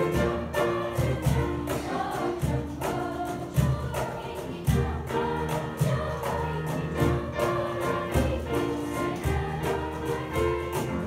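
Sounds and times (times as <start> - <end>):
children's choir singing: 0.0 - 11.0
piano accompaniment: 0.0 - 11.0.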